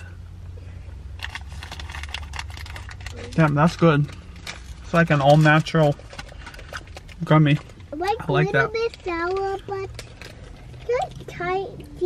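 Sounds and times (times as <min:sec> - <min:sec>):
low steady car hum: 0:00.0 - 0:12.0.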